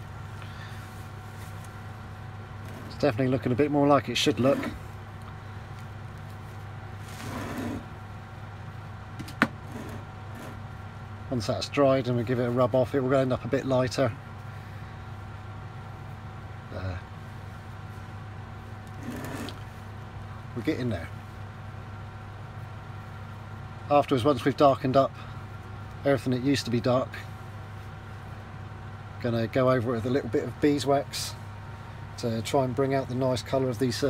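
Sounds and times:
low electrical hum: 0.0s - 34.0s
soft brushing noise: 0.8s - 3.0s
man talking: 2.9s - 4.8s, 11.3s - 14.2s, 16.7s - 17.1s, 20.6s - 21.2s, 23.9s - 25.2s, 26.0s - 27.3s, 29.2s - 31.4s, 32.2s - 34.0s.

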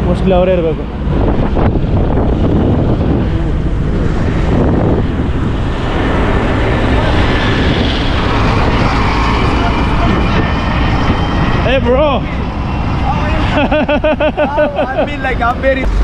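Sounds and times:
traffic rumbling past: 0.0s - 16.0s.

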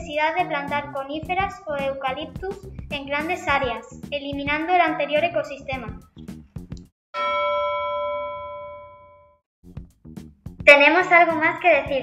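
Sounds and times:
bell-like chime: 7.2s - 9.4s.

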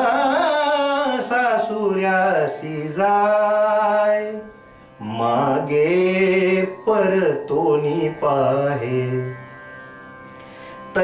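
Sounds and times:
man singing devotional song: 0.0s - 9.8s, 10.8s - 11.0s.

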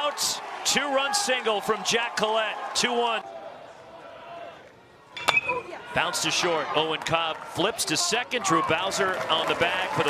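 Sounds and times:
faint ballpark crowd: 0.0s - 10.0s
metal bat hitting ball: 5.2s - 5.7s.

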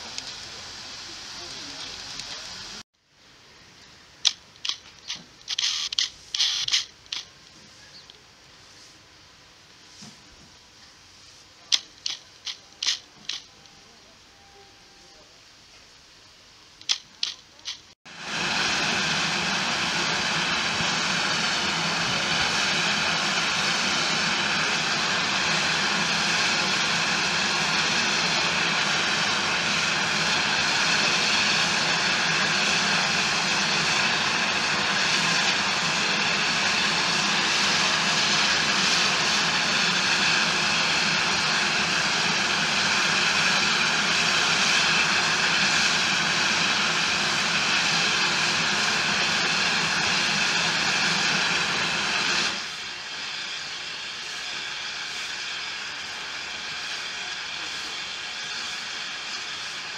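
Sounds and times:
steam hissing from locomotives: 0.0s - 59.9s.

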